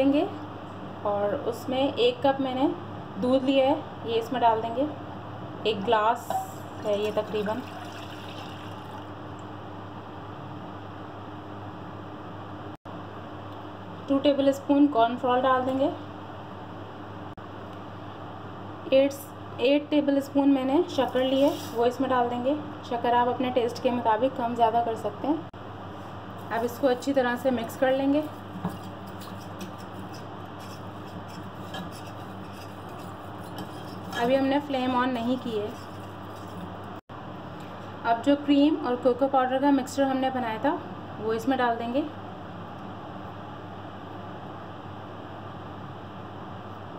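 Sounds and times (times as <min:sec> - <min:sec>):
milk pouring into a saucepan: 0:06.8 - 0:09.1
spoon scraping saucepan: 0:28.1 - 0:36.8.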